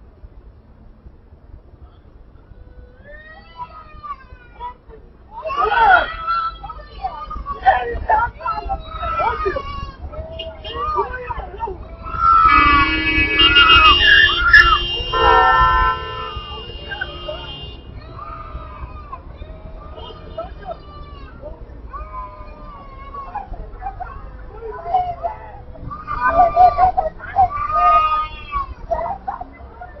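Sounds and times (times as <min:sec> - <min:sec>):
low traffic rumble: 0:00.0 - 0:30.0
young child screaming and crying: 0:02.4 - 0:29.9.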